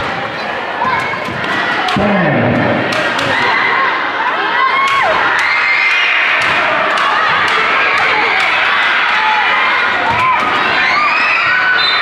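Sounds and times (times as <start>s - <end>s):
children shouting and cheering: 3.2s - 12.0s.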